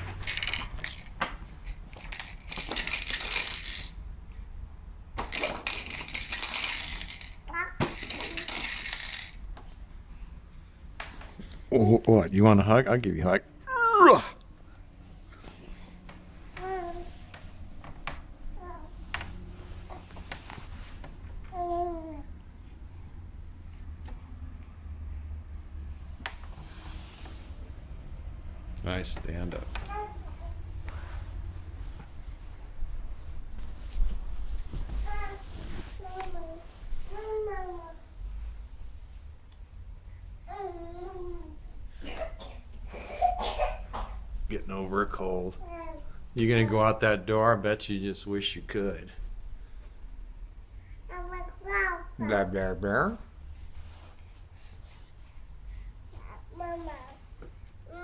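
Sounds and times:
plastic beads rattling in toy: 0:00.1 - 0:04.0, 0:05.2 - 0:09.4.

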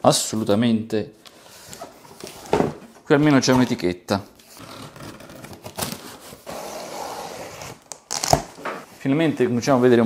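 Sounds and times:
box cutter slitting tape: 0:04.6 - 0:08.6.

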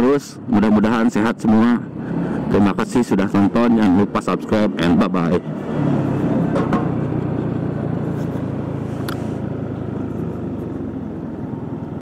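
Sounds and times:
scooter engine humming: 0:01.1 - 0:12.0.

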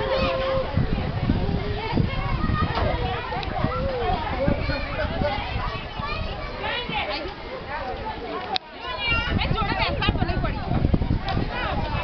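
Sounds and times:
children squealing: 0:00.0 - 0:00.9
children shouting and chattering: 0:00.0 - 0:12.0.

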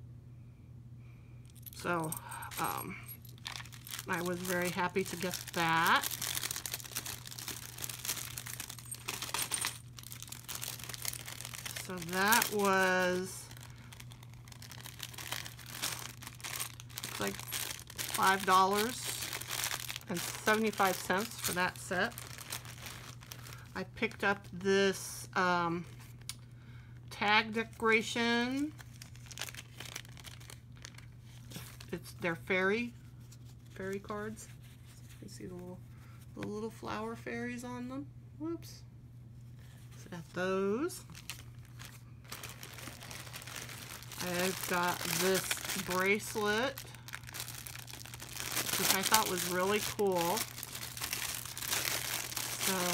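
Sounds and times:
low steady hum: 0:00.0 - 0:52.9
plastic bag crinkling: 0:01.6 - 0:24.2, 0:28.5 - 0:31.9, 0:41.0 - 0:52.9.

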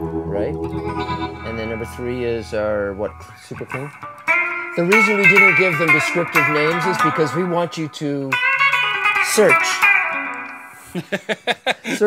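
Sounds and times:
clean electric guitar chord: 0:00.0 - 0:07.7
people laughing: 0:10.8 - 0:12.0.

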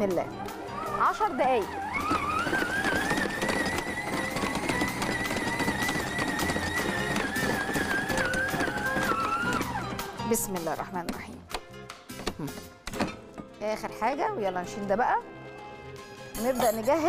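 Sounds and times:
stand mixer motor whining: 0:00.3 - 0:10.2.

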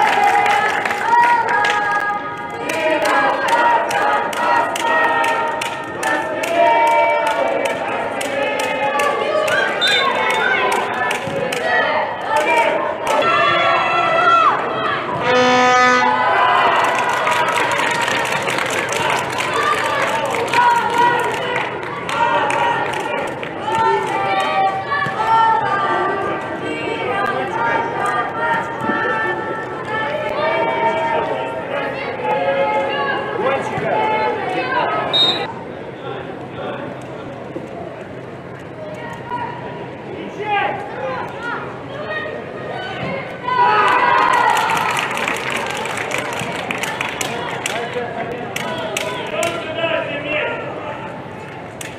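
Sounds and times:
people shouting in an echoing hall: 0:00.0 - 0:35.6, 0:40.3 - 0:45.2.

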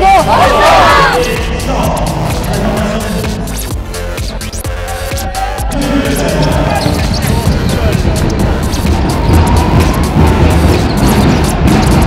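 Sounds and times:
background music: 0:00.0 - 0:12.0
crowd noise and voices: 0:00.0 - 0:12.0
basketball bouncing on hardwood: 0:06.7 - 0:12.0.

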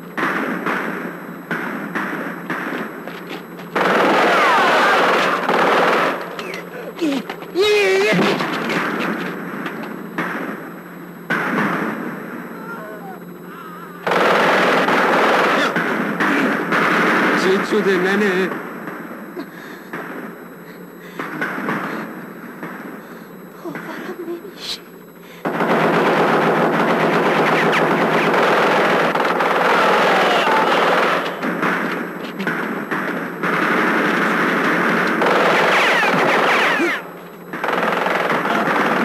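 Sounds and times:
automatic rifle fire: 0:00.0 - 0:02.9, 0:03.7 - 0:06.6, 0:11.3 - 0:12.4, 0:14.0 - 0:19.1, 0:25.4 - 0:39.0.

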